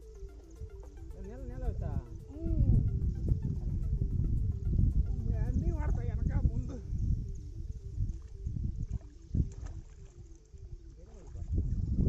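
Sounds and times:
steady low rumbling: 0.0 - 9.7
water splashing from wading: 8.0 - 12.0.

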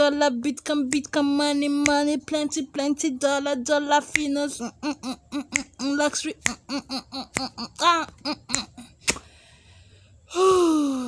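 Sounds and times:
woman breathy sigh: 9.2 - 11.0.

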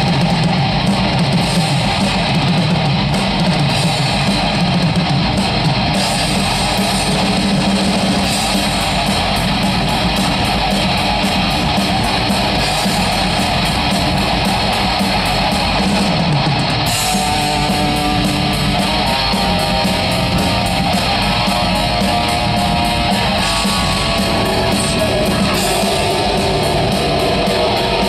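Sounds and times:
bass guitar: 0.0 - 28.0
distorted electric guitars: 0.0 - 28.0
drum kit: 0.0 - 28.0
fast cymbal beat: 0.0 - 28.0.

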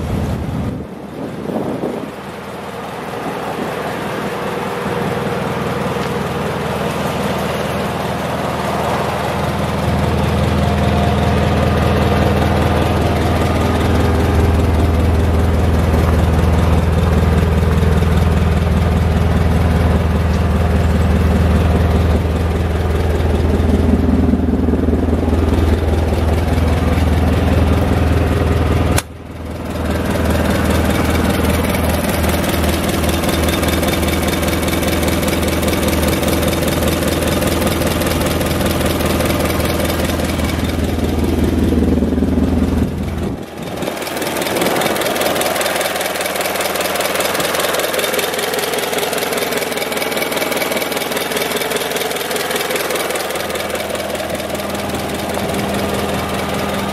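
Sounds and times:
forklift engine idling: 0.0 - 56.9.

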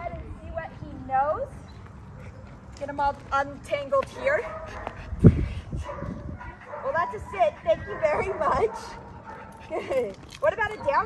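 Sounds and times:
woman speaking: 6.8 - 8.9, 10.4 - 11.0.

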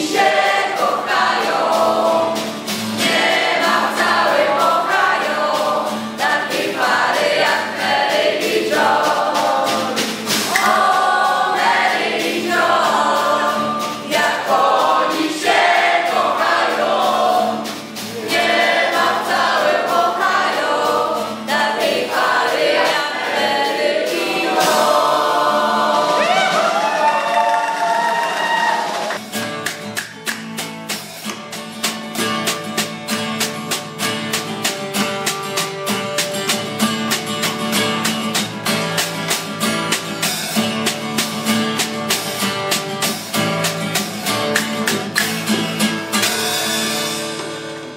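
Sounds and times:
strummed acoustic guitar: 0.0 - 26.6, 29.1 - 47.9
group of voices singing: 0.0 - 29.2.

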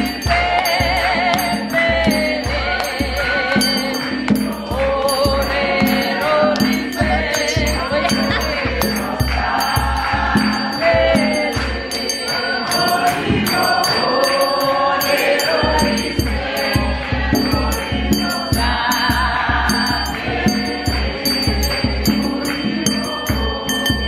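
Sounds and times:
gospel choir singing: 0.0 - 24.0
jingling percussion: 0.0 - 24.0
steady drum beat: 0.0 - 24.0.

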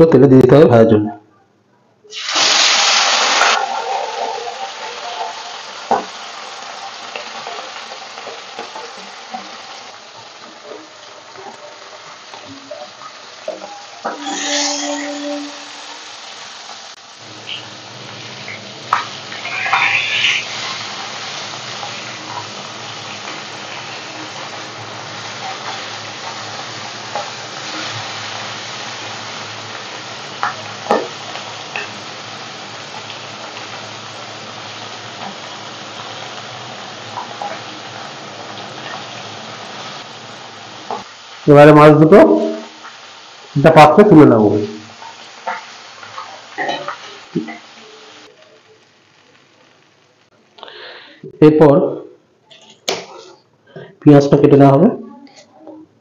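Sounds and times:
fish sizzling in hot oil: 2.1 - 51.2.

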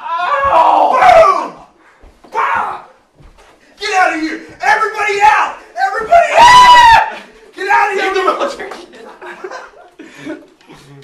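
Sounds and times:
young men shouting: 0.0 - 3.0, 3.8 - 8.7
loud high-pitched scream: 5.3 - 7.2.

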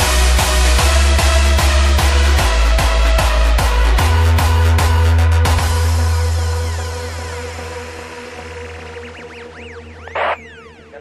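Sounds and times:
low bass drone: 0.0 - 11.0.

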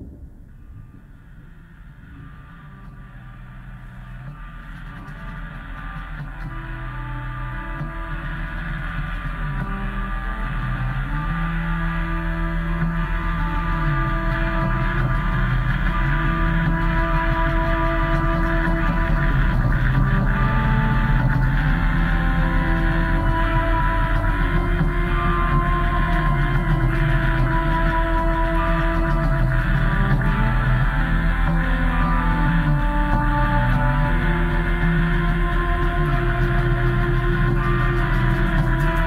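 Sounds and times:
low bass note: 0.0 - 7.9
droning band jam: 0.0 - 39.0
sustained low bass: 0.0 - 39.0.

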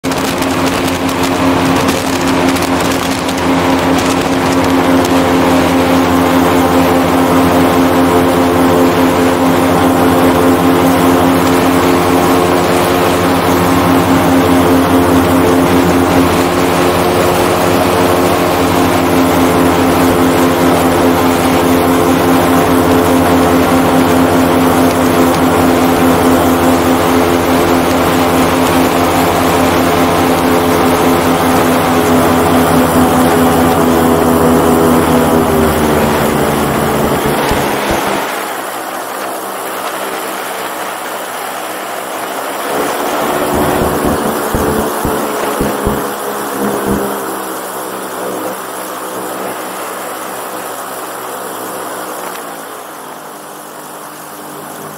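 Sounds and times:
airboat engine and propeller: 0.0 - 54.9.

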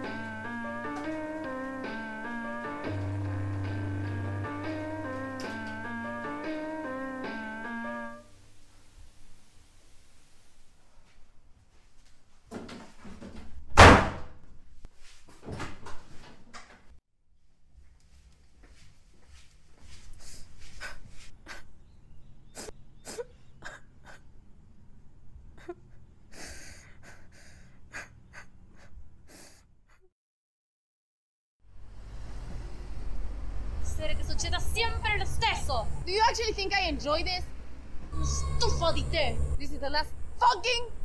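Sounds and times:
door slamming shut: 13.7 - 14.4
shuffling and rustling movement: 17.9 - 21.4
young woman crying: 25.6 - 29.6
gasping breaths: 25.6 - 30.1.

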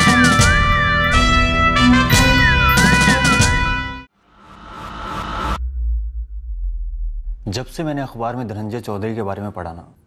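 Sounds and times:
rising whoosh: 4.2 - 7.8
deep low rumble: 4.7 - 8.5.

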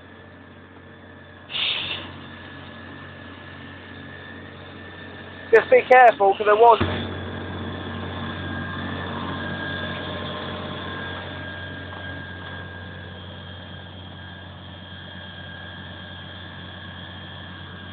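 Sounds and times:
fire engine running: 0.0 - 17.9.

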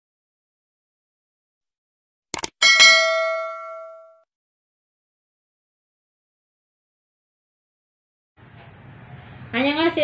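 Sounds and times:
quick clicks: 2.4 - 2.6
notification bell chime: 2.6 - 4.2.

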